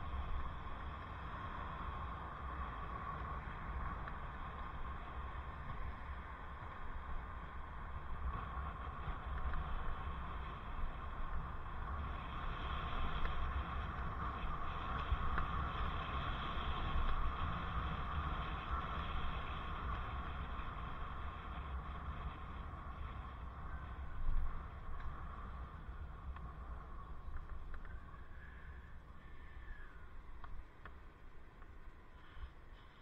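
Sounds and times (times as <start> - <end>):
road and traffic noise: 0.0 - 33.0.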